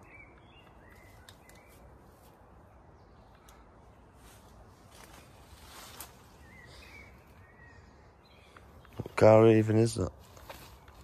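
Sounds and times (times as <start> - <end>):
faint bird calls: 6.2 - 9.0.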